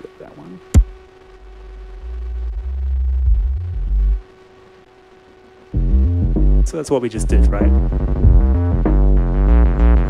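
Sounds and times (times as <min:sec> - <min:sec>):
faint steady hum: 0:00.0 - 0:10.0
deep electronic bass tone: 0:00.8 - 0:04.2, 0:05.8 - 0:10.0.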